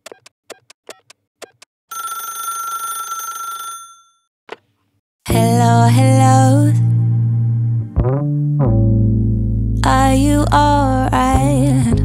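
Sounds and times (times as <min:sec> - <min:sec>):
telephone bell ringing: 0:01.9 - 0:04.3.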